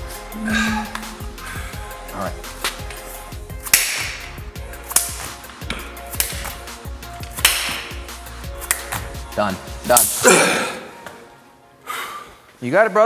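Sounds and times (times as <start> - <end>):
faint background music: 0.0 - 13.0
hands clapping: 3.7 - 4.2, 4.9 - 5.4, 6.2 - 6.6, 7.3 - 8.0, 8.6 - 9.1.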